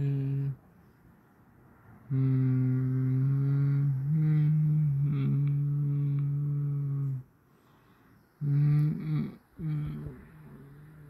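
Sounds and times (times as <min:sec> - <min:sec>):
person humming low: 0:00.0 - 0:00.6, 0:02.1 - 0:07.3, 0:08.4 - 0:11.0.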